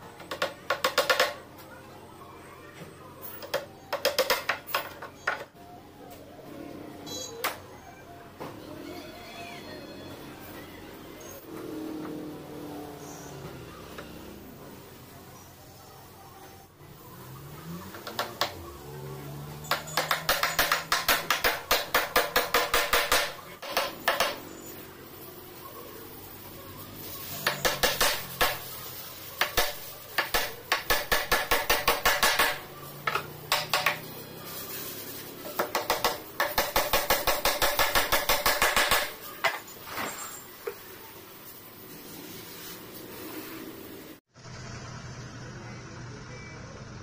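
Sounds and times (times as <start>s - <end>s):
hammer striking nails into wood: 19.7s - 24.4s, 27.4s - 28.6s, 29.4s - 34.0s, 35.6s - 39.2s.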